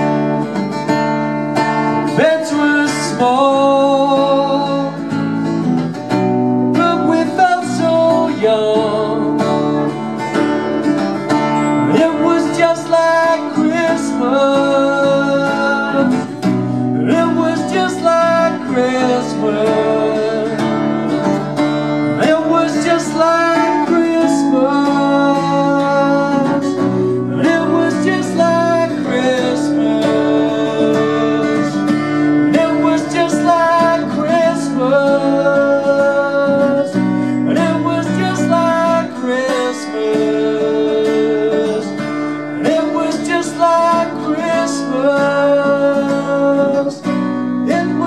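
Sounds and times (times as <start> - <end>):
acoustic guitar strumming: 0.0 - 48.0
man singing into microphone: 1.9 - 5.2, 6.7 - 10.0, 11.5 - 21.0, 22.0 - 48.0.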